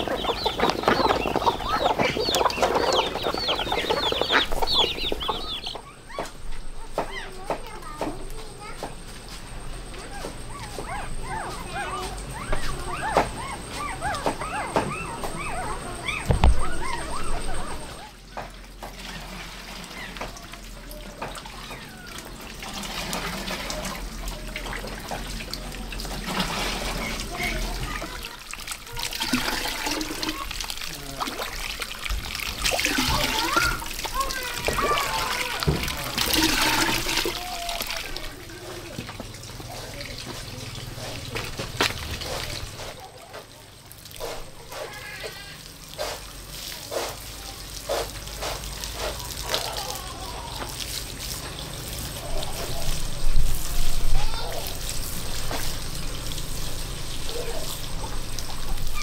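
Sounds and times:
water pouring into watering can: 0.0s - 5.8s, 18.9s - 59.0s
water sprinkling onto plants: 18.8s - 59.0s.

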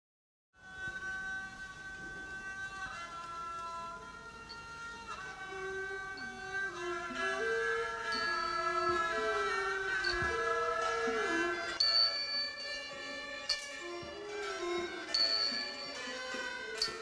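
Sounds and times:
classical ensemble playing held notes: 0.6s - 17.0s.

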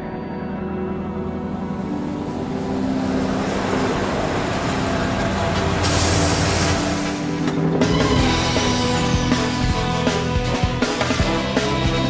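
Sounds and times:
truck driving past: 1.1s - 10.3s
air hiss: 5.7s - 7.4s.

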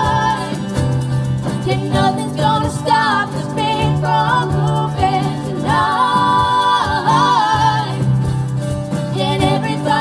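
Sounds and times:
acoustic guitars: 0.0s - 10.0s
keyboard: 0.0s - 10.0s
women singing long notes: 1.7s - 8.2s.

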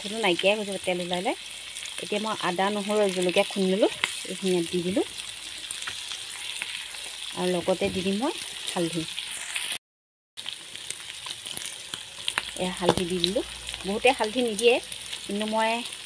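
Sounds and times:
pork sizzling in a pan: 0.0s - 9.8s, 10.4s - 16.0s.

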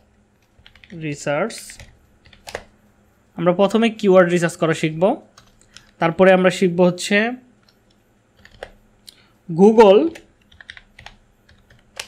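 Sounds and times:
typing on computer keyboard: 0.4s - 2.7s, 5.4s - 5.9s, 8.4s - 8.8s, 10.0s - 12.0s.

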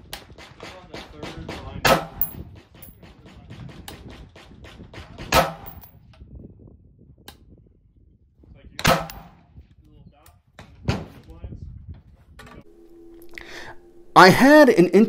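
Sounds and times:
rifle shots: 8.8s - 9.3s.

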